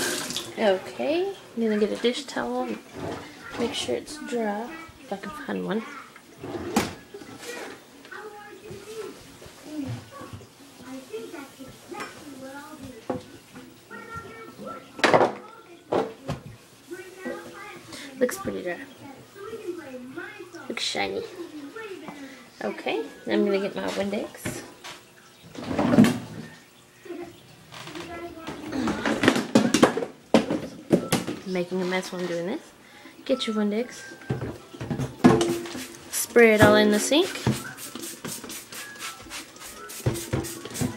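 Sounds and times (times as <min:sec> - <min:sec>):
household items clattering: 0:01.9 - 0:04.0, 0:06.4 - 0:07.8, 0:25.5 - 0:26.5, 0:27.7 - 0:32.5, 0:34.2 - 0:37.7.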